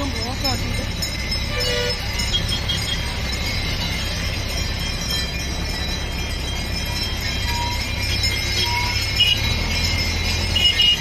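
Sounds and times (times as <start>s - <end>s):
motorcycle engines: 0.0s - 11.0s
traffic rumble: 0.0s - 11.0s.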